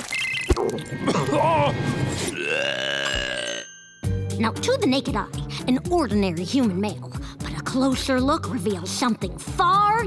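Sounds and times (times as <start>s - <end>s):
cartoon old man retching: 0.6s - 3.7s.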